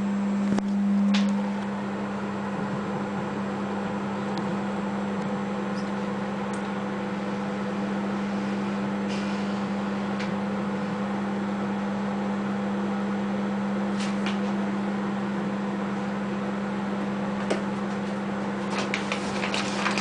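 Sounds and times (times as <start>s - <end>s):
microwave oven humming: 0.0s - 20.0s
microwave click: 0.5s - 1.4s.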